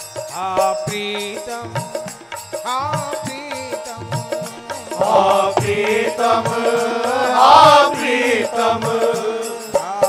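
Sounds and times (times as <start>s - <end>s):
instrumental accompaniment: 0.0s - 10.0s
steady percussion beat: 0.0s - 10.0s
man singing: 0.3s - 10.0s.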